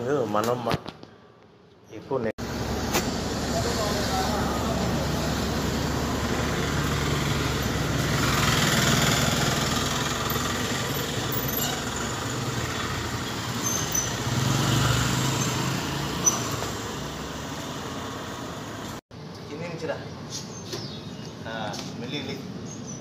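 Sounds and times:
road noise: 0.0s - 23.0s
truck engine hum: 2.4s - 19.0s.

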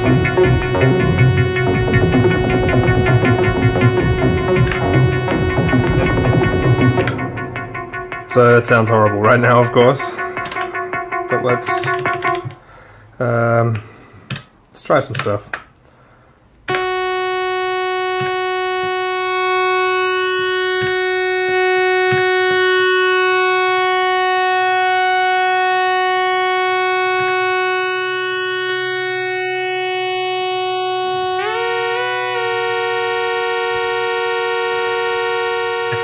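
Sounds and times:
synthesizer pad drone: 0.0s - 12.7s, 16.7s - 36.0s.

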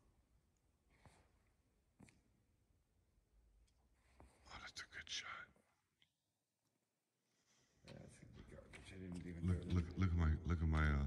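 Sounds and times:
faint whispering voice: 4.4s - 5.9s.

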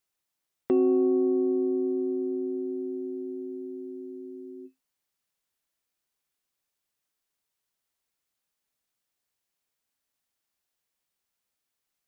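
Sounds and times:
keyboard tritone chord: 0.7s - 4.7s.

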